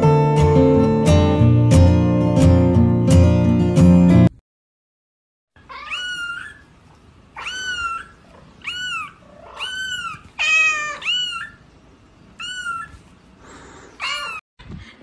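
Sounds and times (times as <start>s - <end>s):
kitten mewing: 5.6s - 6.6s, 7.4s - 11.6s, 12.4s - 14.4s.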